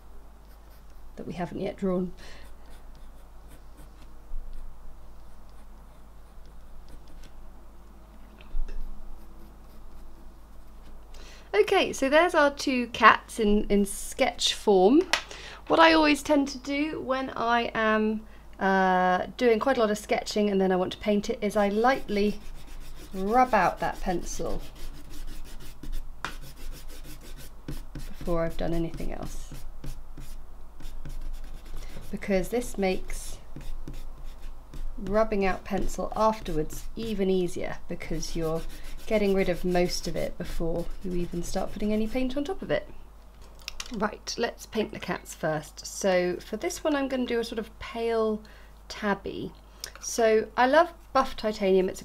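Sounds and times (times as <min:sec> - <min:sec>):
pencil scratching on paper: 0:02.4 - 0:04.6, 0:08.8 - 0:10.5, 0:21.7 - 0:37.3, 0:38.0 - 0:42.4.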